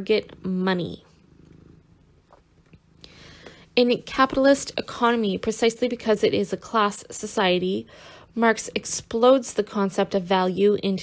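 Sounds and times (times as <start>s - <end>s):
faint low rumble: 0.0s - 10.2s.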